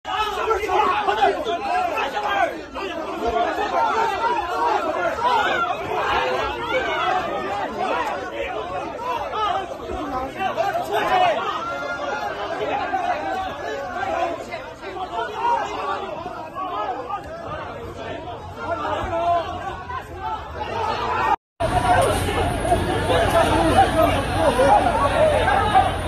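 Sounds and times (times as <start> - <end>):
crowd talking: 0.1 - 26.0.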